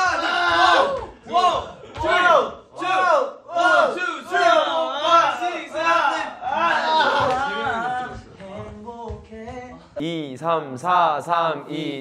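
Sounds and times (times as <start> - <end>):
young men chanting a count: 0.0 - 12.0.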